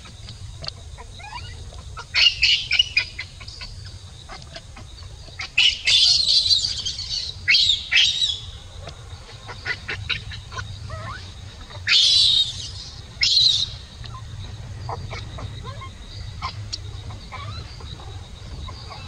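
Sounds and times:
baby monkey screaming: 0:01.0 - 0:08.5, 0:09.4 - 0:18.0.

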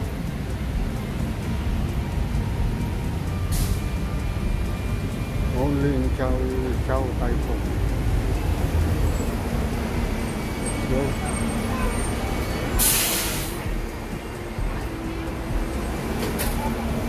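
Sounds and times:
rumble of traffic: 0:00.0 - 0:17.0
voices of passers-by: 0:00.0 - 0:17.0
bus brakes hissing: 0:03.4 - 0:04.1, 0:10.2 - 0:13.8, 0:16.0 - 0:17.0.

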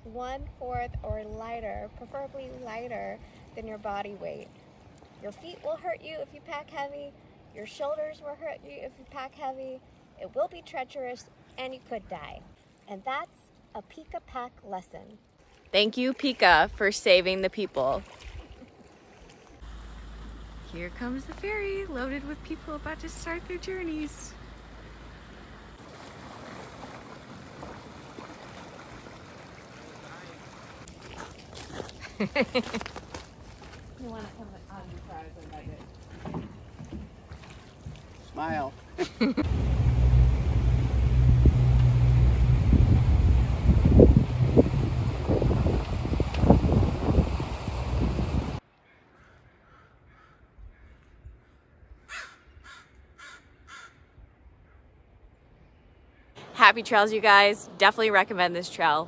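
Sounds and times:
water washing: 0:15.4 - 0:48.6
ferry boat approaching: 0:15.6 - 0:48.6, 0:56.4 - 0:59.0
wind buffeting microphone: 0:39.4 - 0:48.6
crow cawing: 0:48.8 - 0:51.0, 0:52.1 - 0:54.1
person's voice: 0:56.5 - 0:59.0.

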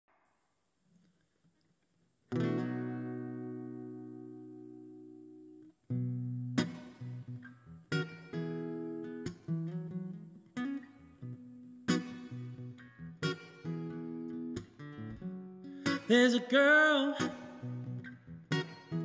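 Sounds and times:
acoustic guitar strumming: 0:02.3 - 0:19.0.

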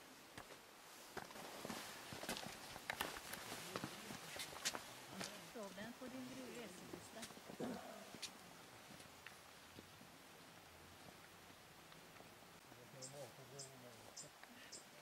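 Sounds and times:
footsteps on stone path: 0:00.3 - 0:12.4.

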